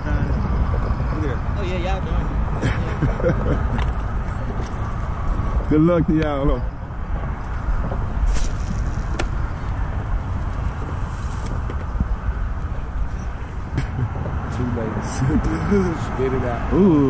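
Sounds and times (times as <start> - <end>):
highway traffic rushing: 0.0 - 17.0.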